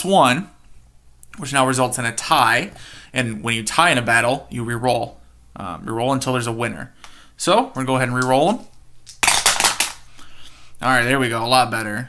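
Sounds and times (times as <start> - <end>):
dice clattering in wooden tower: 9.1 - 10.0.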